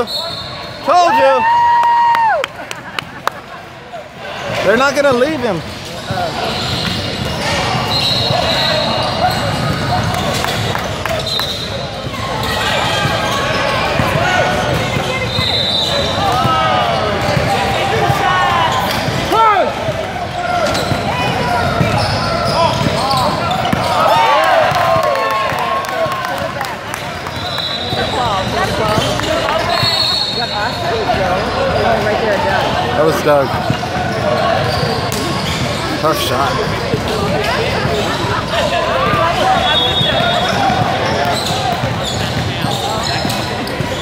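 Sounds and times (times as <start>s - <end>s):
sneakers squeaking on hardwood: 4.4s - 19.3s, 20.3s - 25.1s, 26.9s - 44.0s
basketball dribbling: 39.1s - 44.0s.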